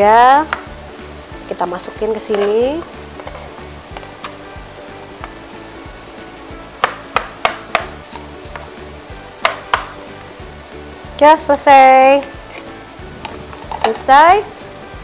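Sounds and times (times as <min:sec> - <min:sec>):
soft background music: 0:00.0 - 0:15.0.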